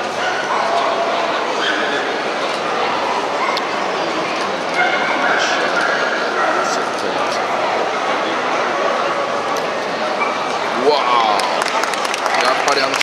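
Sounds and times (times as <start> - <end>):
crowd chatter indoors: 0.0 - 13.0.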